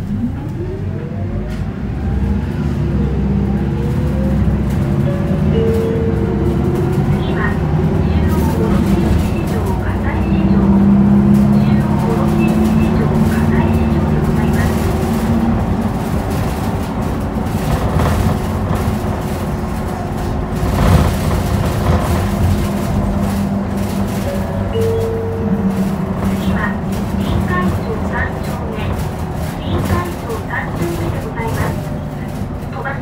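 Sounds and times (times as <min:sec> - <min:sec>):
bus diesel engine droning: 0:00.0 - 0:33.0
road noise: 0:00.0 - 0:33.0.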